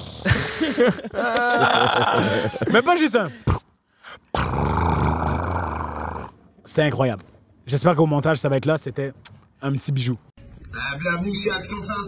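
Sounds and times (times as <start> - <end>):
low buzzing fart: 4.4 - 6.3.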